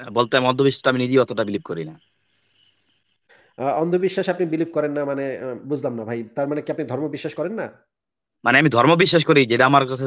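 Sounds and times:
high-pitched steady tone: 0:00.0 - 0:03.1.

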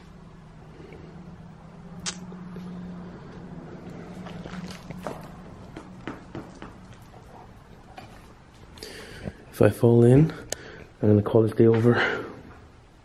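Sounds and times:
steady low hum: 0:00.0 - 0:13.0
footsteps on wet concrete: 0:02.5 - 0:07.2.

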